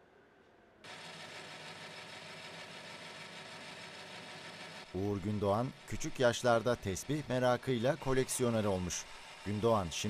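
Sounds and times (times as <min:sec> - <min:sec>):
band saw motor humming: 0:00.8 - 0:10.0.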